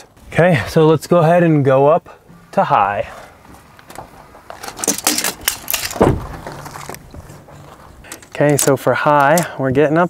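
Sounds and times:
footsteps on gravel: 0:03.0 - 0:04.8
car door thud: 0:05.9 - 0:06.6.

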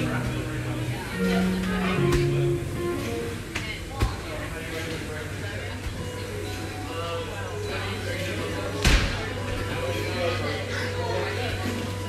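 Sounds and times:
background music: 0:00.0 - 0:03.9, 0:05.2 - 0:12.0.

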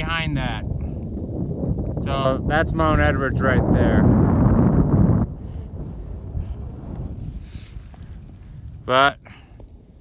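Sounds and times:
faint wind rush: 0:00.0 - 0:10.0
wind buffeting microphone: 0:00.0 - 0:10.0.

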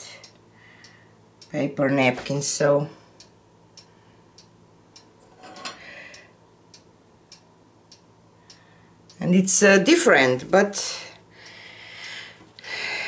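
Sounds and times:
faint steady ticking: 0:00.1 - 0:12.9.

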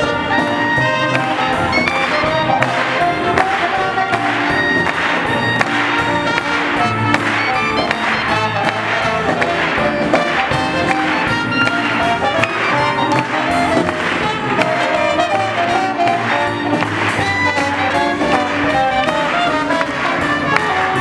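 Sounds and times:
dixieland jazz band playing: 0:00.0 - 0:21.0.

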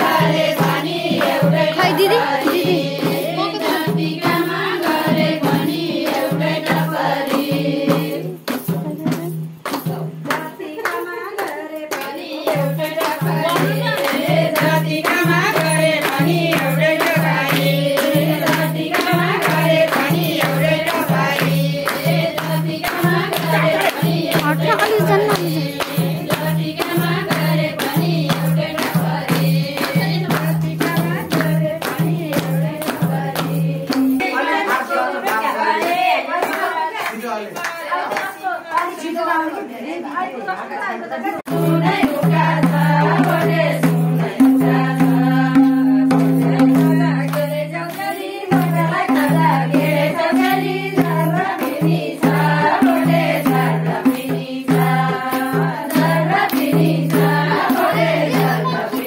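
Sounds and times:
women clapping in rhythm: 0:00.0 - 0:39.6, 0:41.4 - 0:59.0
women singing a dance song: 0:00.0 - 0:59.0.

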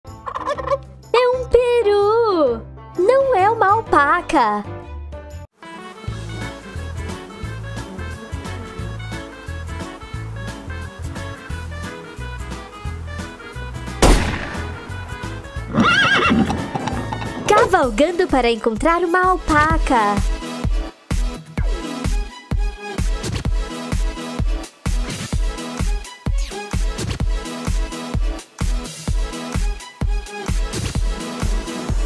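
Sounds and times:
turkey gobbling: 0:00.2 - 0:00.8, 0:15.7 - 0:17.5
background music with bass line: 0:02.6 - 0:18.1, 0:18.8 - 0:32.0
horse whinnying: 0:15.6 - 0:17.5.

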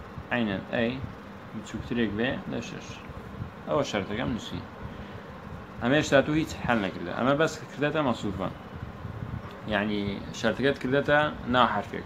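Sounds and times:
low buzzing hum: 0:00.0 - 0:12.0.

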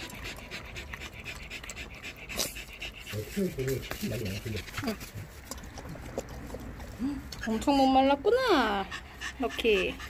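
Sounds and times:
dog lapping water: 0:00.0 - 0:08.0.

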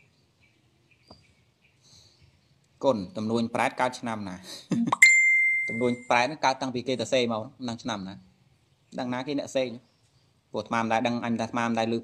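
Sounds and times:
man talking: 0:02.8 - 0:05.0, 0:05.6 - 0:08.3, 0:08.9 - 0:09.8, 0:10.6 - 0:12.0
bright bell ding: 0:05.0 - 0:06.2.

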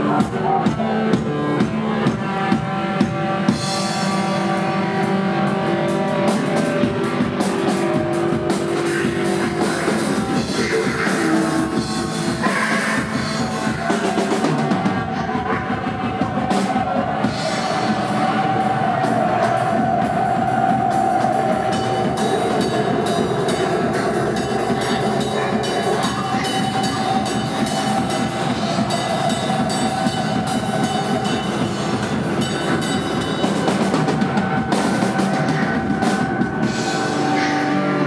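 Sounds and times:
live rock band playing: 0:00.0 - 0:38.0
drum kit cymbal and drum strokes: 0:03.5 - 0:38.0.

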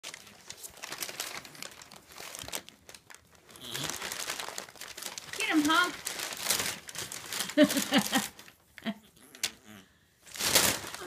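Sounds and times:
paper crinkling and rustling: 0:00.0 - 0:08.7, 0:10.3 - 0:11.0.

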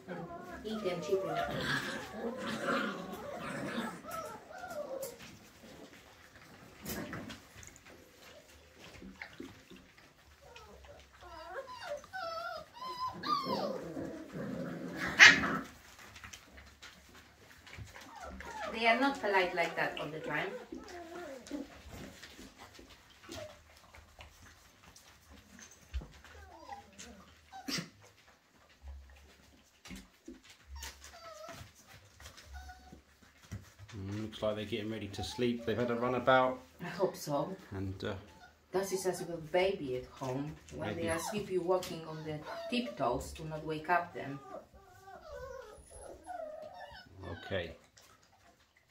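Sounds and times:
puppies whining and whimpering: 0:00.0 - 0:15.2, 0:15.8 - 0:34.3, 0:34.9 - 0:36.7, 0:38.2 - 0:48.6.

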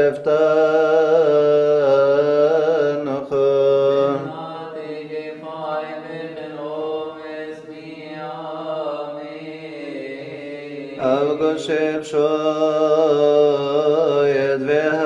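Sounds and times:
liturgical chant: 0:00.0 - 0:15.0.

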